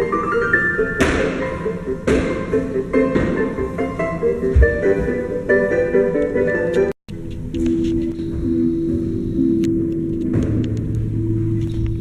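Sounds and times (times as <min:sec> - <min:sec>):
ballet music with low notes: 0:00.0 - 0:12.0.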